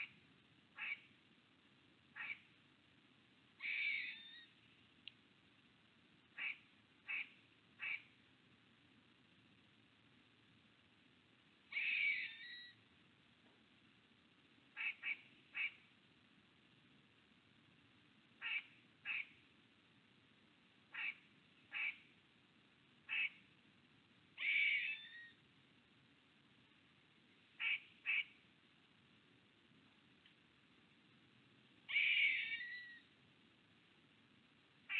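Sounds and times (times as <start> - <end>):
bird calling: 3.6 - 4.5, 11.7 - 12.8, 20.9 - 22.1, 23.1 - 23.4, 24.4 - 25.4, 27.6 - 28.4, 31.9 - 33.1.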